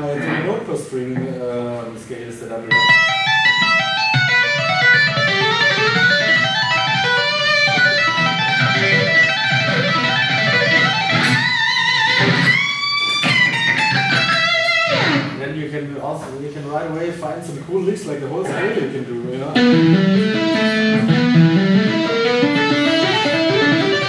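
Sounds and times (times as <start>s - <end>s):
electric guitar lead playing: 2.7s - 15.4s, 19.5s - 24.0s.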